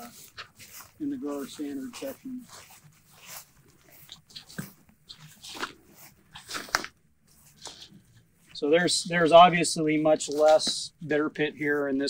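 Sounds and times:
footfalls on grass: 0:00.0 - 0:07.6
leaves and branches rustling: 0:00.0 - 0:10.7.

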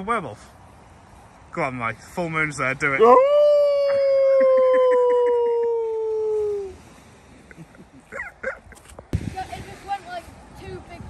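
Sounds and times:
man howling like a werewolf: 0:03.0 - 0:06.8
person laughing: 0:03.5 - 0:06.7, 0:07.5 - 0:08.8.

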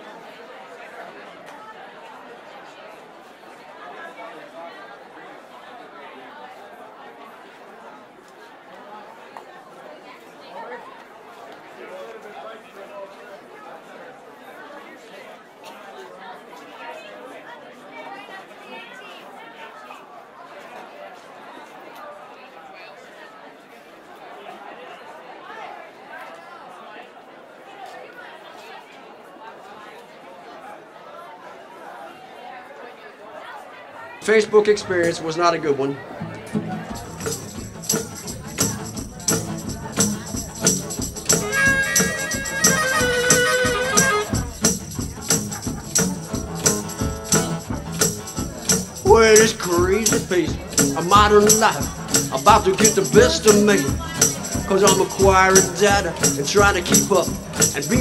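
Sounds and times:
babble of overlapping voices: 0:00.0 - 0:58.0
indistinct chatter of people: 0:00.0 - 0:58.0.

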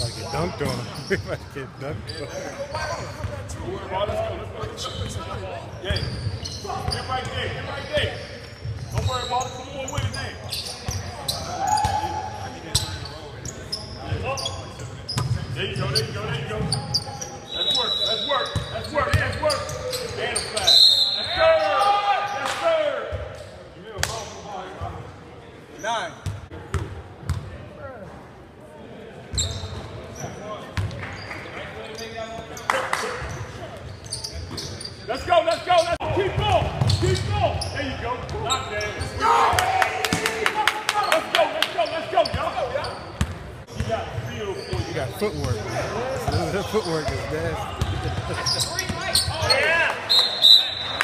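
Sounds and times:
players calling out: 0:00.0 - 0:07.2, 0:43.7 - 0:51.0.

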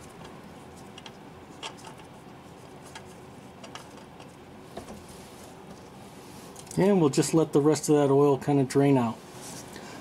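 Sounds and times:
steady low hiss: 0:00.0 - 0:10.0.

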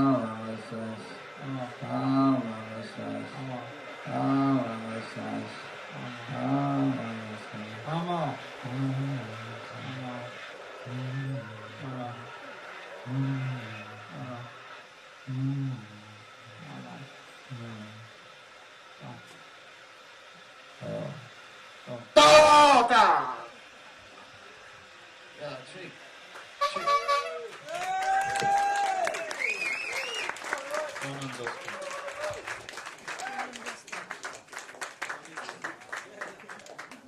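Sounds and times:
wordless wavering vocal moans: 0:15.3 - 0:16.1.

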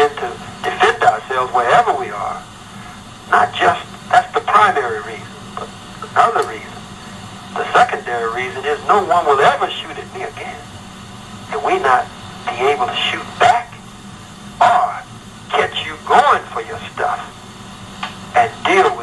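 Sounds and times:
person talking on lo-fi recording: 0:00.0 - 0:02.5, 0:03.3 - 0:06.9, 0:07.5 - 0:10.7, 0:11.5 - 0:13.8, 0:14.6 - 0:17.4, 0:18.3 - 0:19.0.

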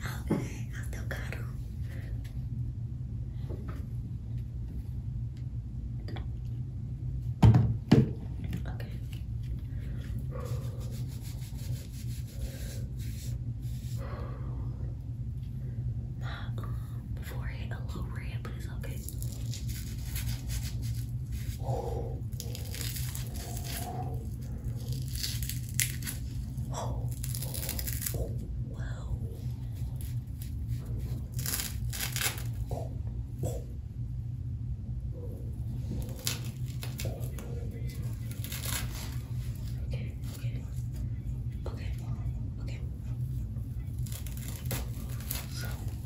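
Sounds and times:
steady low hum: 0:00.0 - 0:46.0
fingers scratching and rustling wig: 0:10.1 - 0:14.0, 0:18.9 - 0:21.6, 0:35.8 - 0:41.0, 0:43.3 - 0:46.0.

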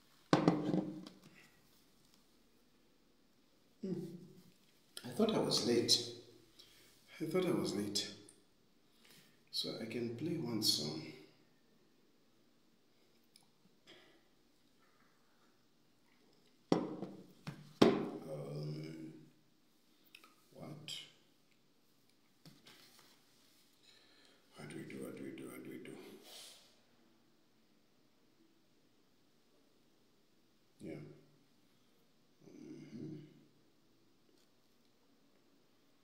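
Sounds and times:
glass knocking on hard surface: 0:00.4 - 0:01.0, 0:16.7 - 0:17.2
glass set down on wood: 0:00.4 - 0:01.1, 0:16.7 - 0:17.2.

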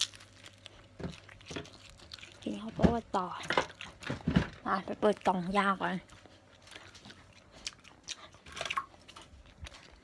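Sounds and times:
food crunching: 0:00.0 - 0:10.0
person chewing food: 0:00.0 - 0:10.0.

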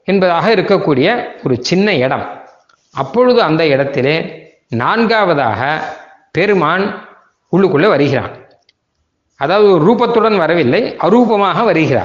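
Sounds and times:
man speaking: 0:00.0 - 0:08.5, 0:09.4 - 0:12.0.

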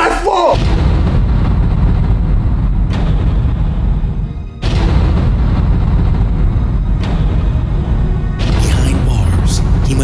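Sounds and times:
deep low rumble: 0:00.6 - 0:10.0
sudden boom hit: 0:00.6 - 0:10.0.

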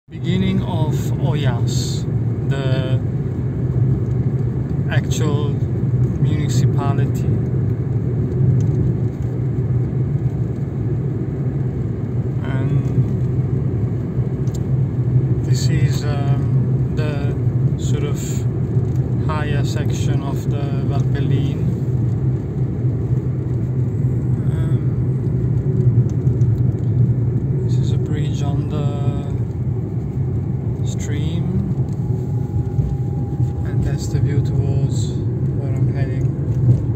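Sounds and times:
car engine and tyre noise: 0:00.1 - 0:36.9.

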